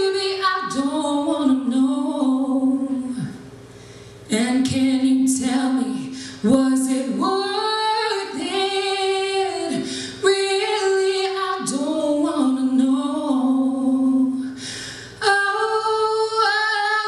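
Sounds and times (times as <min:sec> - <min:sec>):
woman singing into microphone: 0:00.0 - 0:03.4, 0:04.3 - 0:17.0.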